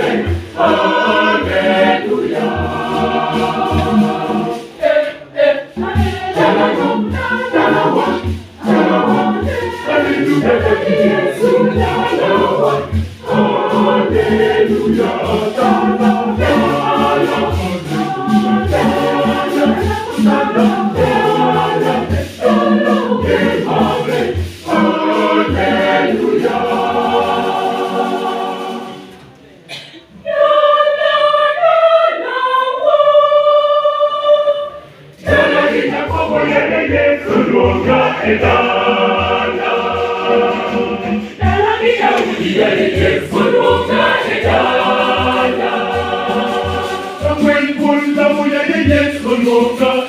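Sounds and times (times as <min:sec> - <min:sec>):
conga drums: 0:00.0 - 0:29.2, 0:35.2 - 0:50.0
choir singing gospel: 0:00.0 - 0:50.0.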